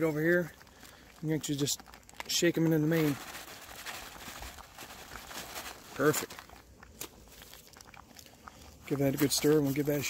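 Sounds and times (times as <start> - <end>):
man talking: 0.0 - 0.6, 1.2 - 3.2, 5.9 - 6.3, 8.8 - 10.0
foil pouch rustling: 0.0 - 7.9.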